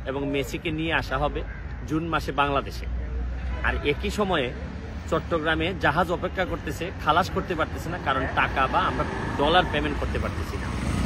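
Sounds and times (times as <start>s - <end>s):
man speaking: 0.0s - 10.9s
road traffic rumble: 0.0s - 11.0s.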